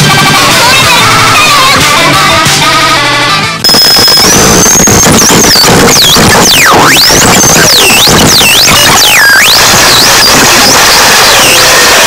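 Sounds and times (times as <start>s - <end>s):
harsh electronic noise: 0.0s - 12.0s.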